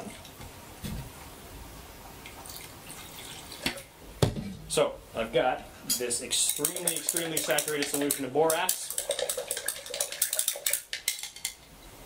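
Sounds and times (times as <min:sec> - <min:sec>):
metal spoon clinking in glass: 0:06.0 - 0:11.6.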